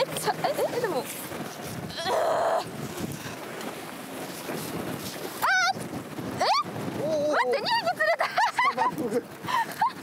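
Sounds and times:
wind noise on microphone: 0.0s - 10.0s
woman groaning: 1.9s - 2.7s.

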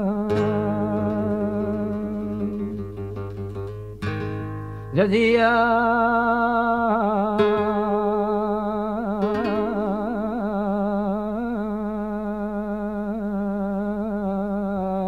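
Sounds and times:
man singing flamenco: 0.0s - 15.0s
flamenco guitar plucking: 0.1s - 11.5s.

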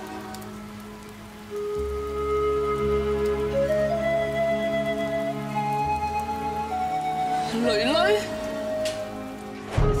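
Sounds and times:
soft music of sustained notes: 0.0s - 10.0s
steady rain falling: 0.0s - 10.0s.

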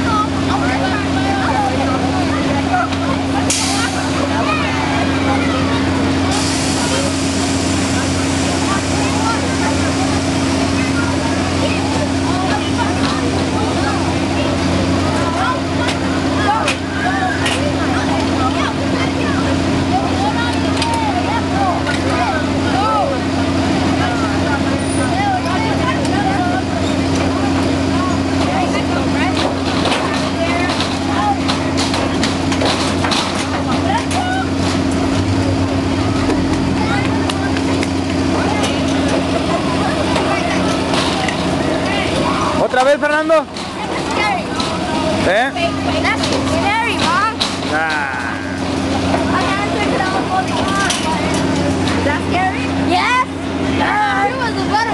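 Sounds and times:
babble of many voices: 0.0s - 54.9s
ride machinery hum: 0.0s - 54.9s.

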